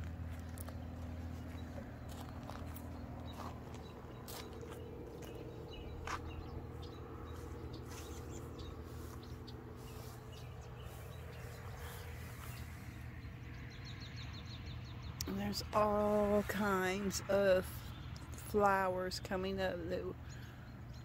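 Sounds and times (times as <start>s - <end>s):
footsteps on mulch and gravel: 0.0s - 13.6s
steady low hum: 0.0s - 21.0s.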